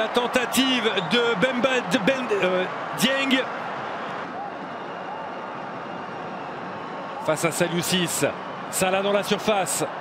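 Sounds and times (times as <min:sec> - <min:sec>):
stadium crowd din: 0:00.0 - 0:10.0.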